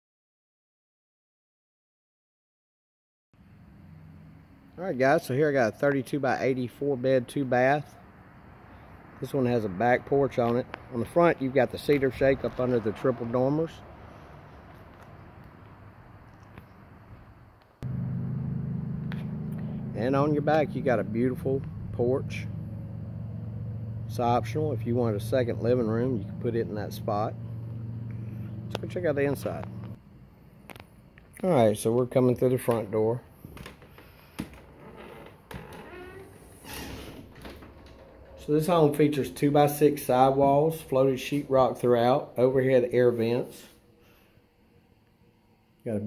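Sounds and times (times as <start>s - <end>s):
faint outdoor background noise: 3.4s - 46.0s
low mechanical hum: 3.4s - 46.0s.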